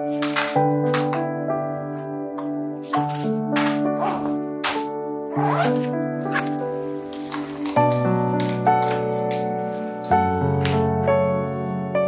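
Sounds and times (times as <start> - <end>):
soft piano music: 0.0 - 12.0
zipper rasping closed: 3.9 - 6.6.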